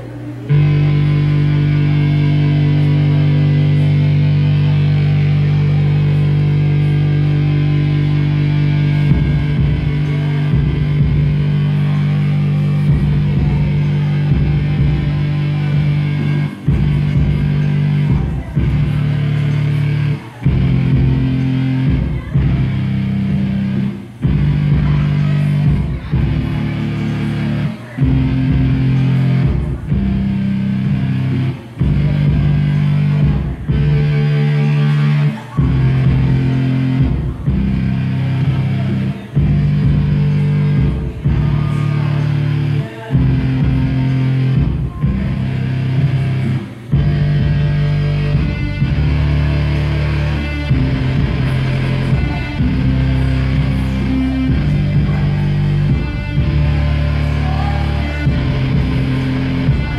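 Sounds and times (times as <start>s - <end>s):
heavy keyboard chord riff: 0.0s - 59.9s.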